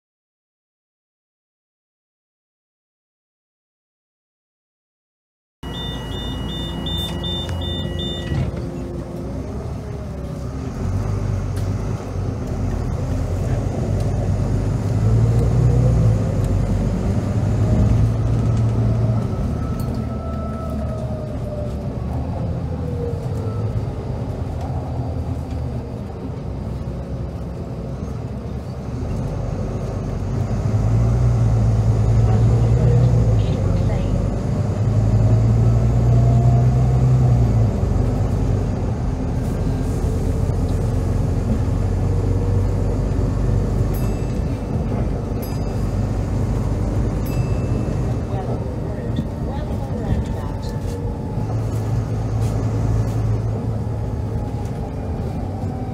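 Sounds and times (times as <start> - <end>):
high beeps: 5.6 - 8.5
bus diesel engine pulling hard: 5.6 - 55.9.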